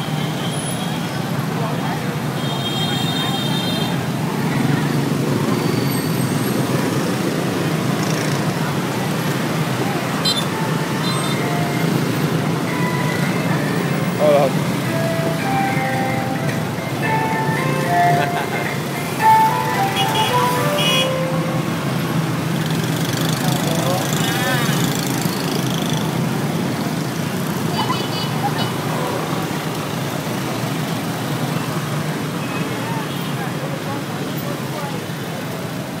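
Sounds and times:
street traffic engine hum: 0.0s - 36.0s
crowd voices: 1.0s - 26.8s, 27.4s - 30.1s.

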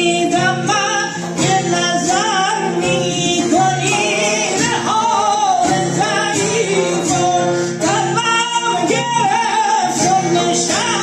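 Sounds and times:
plucked long-necked lute: 0.0s - 11.0s.

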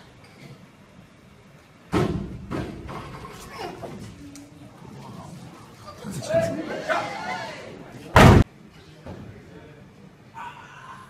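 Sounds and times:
voices: 3.3s - 8.4s
barbell slamming on wooden platform: 8.2s - 8.4s.

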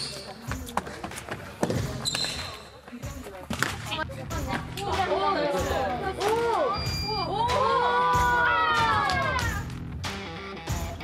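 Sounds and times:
sneaker squeaks: 0.0s - 3.2s, 6.7s - 7.3s
voices in gym: 0.0s - 9.7s.

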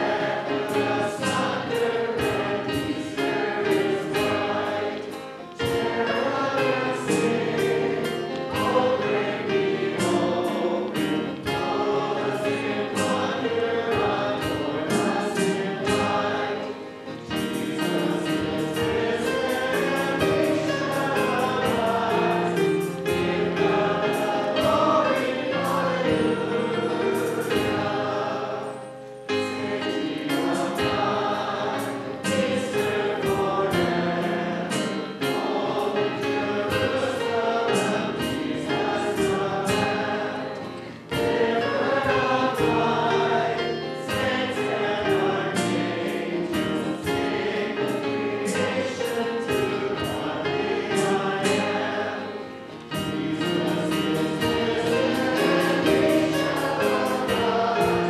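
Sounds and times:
mixed choir singing: 0.0s - 58.0s.

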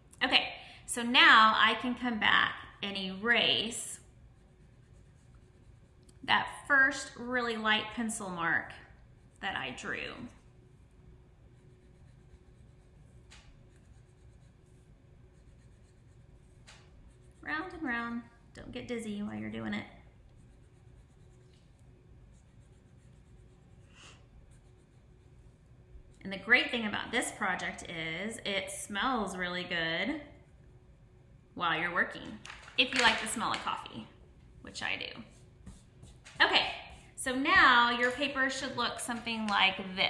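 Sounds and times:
eraser rubbing on paper: 3.7s - 6.0s, 11.5s - 17.8s, 20.4s - 25.7s, 34.9s - 39.3s.

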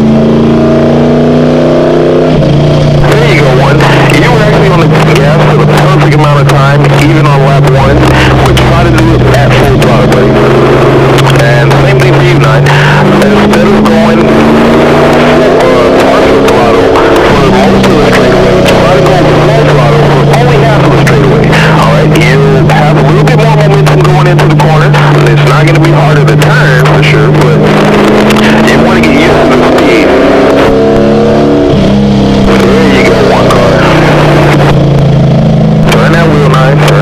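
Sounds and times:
race car engine running hard: 0.0s - 37.0s.

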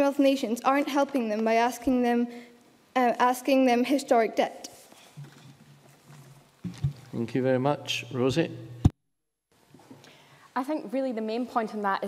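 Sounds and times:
man speaking: 7.0s - 8.8s.

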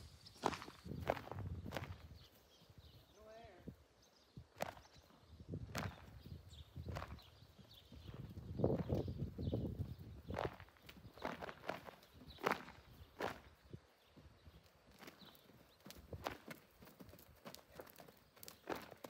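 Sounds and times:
hoof strikes on dirt: 0.0s - 2.6s, 4.5s - 19.0s.

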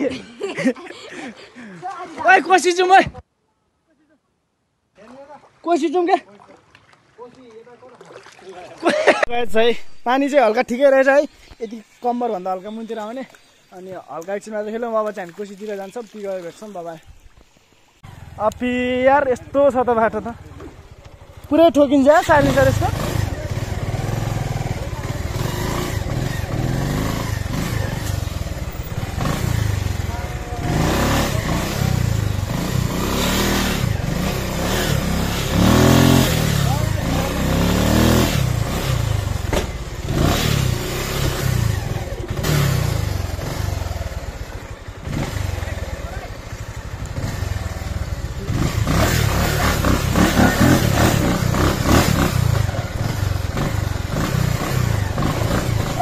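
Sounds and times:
motorcycle engine revving: 18.0s - 56.0s.

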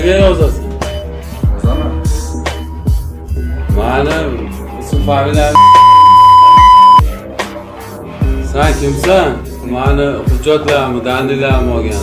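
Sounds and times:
censor bleep: 5.6s - 7.0s.

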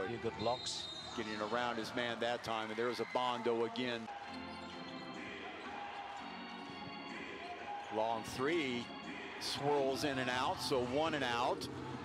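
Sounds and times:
faint arena music: 0.0s - 12.0s.

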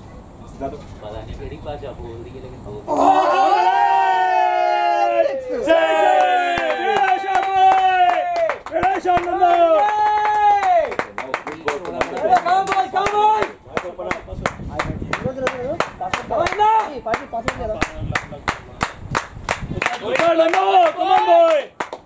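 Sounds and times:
men shouting long calls: 2.9s - 11.0s, 16.3s - 17.1s, 20.0s - 21.7s
scattered hand clapping: 6.1s - 22.0s.

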